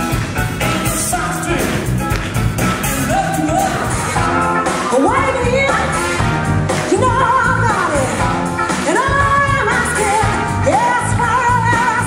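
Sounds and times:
bass: 0:00.0 - 0:12.0
drums: 0:00.0 - 0:12.0.

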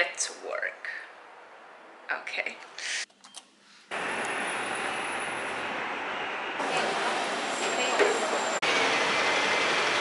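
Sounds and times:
vehicle running noise: 0:03.9 - 0:10.0.

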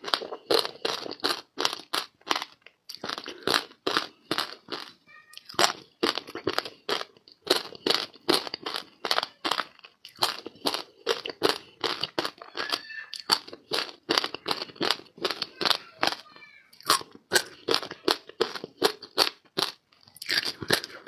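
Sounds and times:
ice being chewed: 0:00.0 - 0:21.0.

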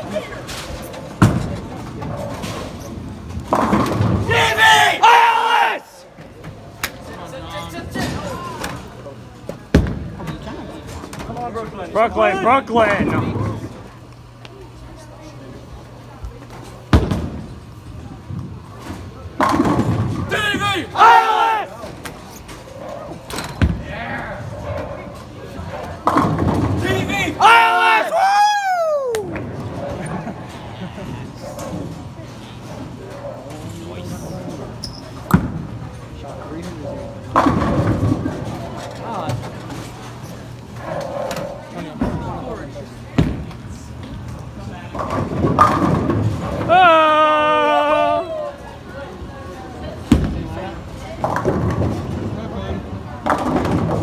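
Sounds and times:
loud held yell: 0:04.2 - 0:06.0, 0:20.3 - 0:21.8, 0:27.2 - 0:29.2, 0:46.7 - 0:48.5
people shouting and cheering: 0:04.2 - 0:06.0, 0:20.3 - 0:21.8, 0:27.0 - 0:29.4, 0:46.6 - 0:48.6.

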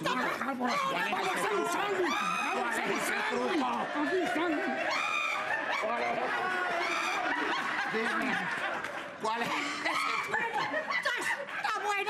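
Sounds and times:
people laughing: 0:00.0 - 0:12.0.

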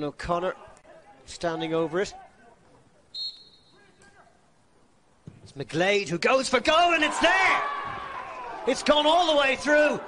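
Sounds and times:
faint players' voices: 0:00.1 - 0:05.6
referee's whistle blast: 0:03.1 - 0:03.9.

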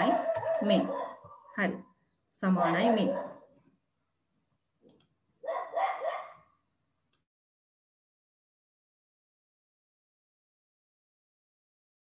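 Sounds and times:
dog barking: 0:00.0 - 0:01.5, 0:03.0 - 0:03.5, 0:05.4 - 0:06.5.

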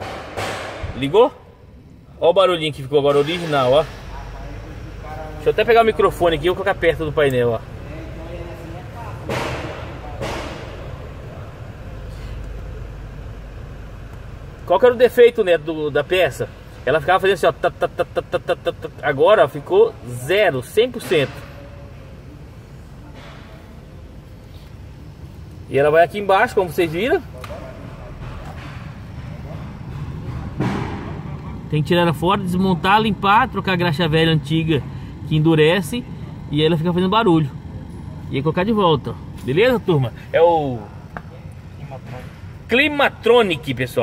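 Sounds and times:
climate control unit humming: 0:00.0 - 0:44.0.

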